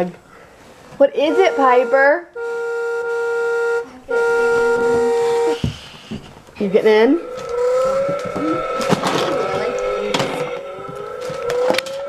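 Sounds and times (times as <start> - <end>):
electronic toy car tune: 1.2 - 5.6, 6.9 - 12.0.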